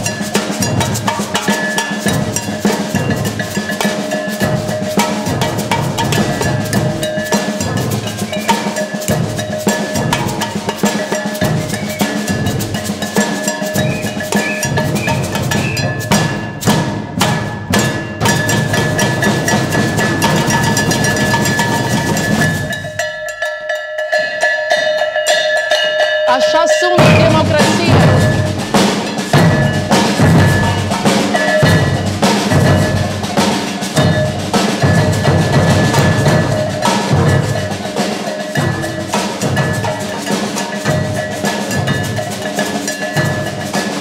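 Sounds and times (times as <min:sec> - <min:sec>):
snare drum: 0:00.0 - 0:23.0, 0:26.4 - 0:44.0
metal pail beaten with sticks: 0:00.0 - 0:44.0
bass drum: 0:26.9 - 0:37.8.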